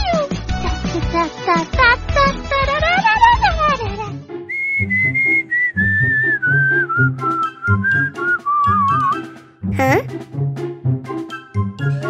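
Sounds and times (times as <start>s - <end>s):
children's backing track with bass: 0.0s - 4.4s, 9.7s - 10.1s
whistled tune: 4.5s - 9.4s.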